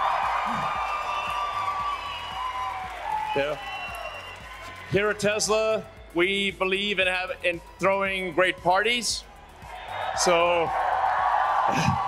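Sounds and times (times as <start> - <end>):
crowd cheering and applauding: 0.0 - 12.0
high whistle-like tones: 0.5 - 4.9.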